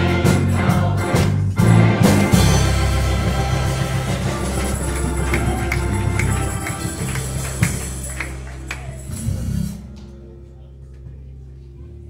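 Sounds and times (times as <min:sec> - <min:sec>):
children's choir singing: 0:00.0 - 0:09.2
church instrumental music: 0:00.0 - 0:12.0.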